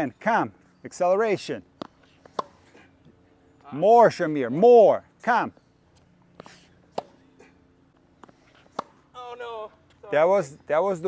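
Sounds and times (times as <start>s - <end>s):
tennis racket hitting ball: 1.8s - 2.6s, 6.9s - 7.2s, 8.5s - 9.0s.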